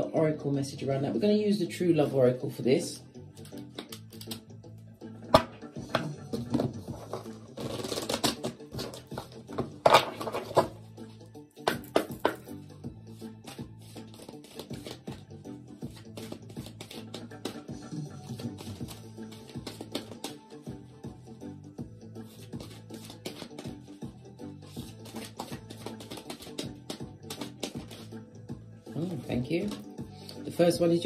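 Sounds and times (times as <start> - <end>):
background music with low tones: 0.0 - 31.0
cards being shuffled: 3.4 - 4.4, 5.4 - 10.8, 11.6 - 20.8, 22.2 - 24.0, 24.6 - 28.2, 29.0 - 29.9.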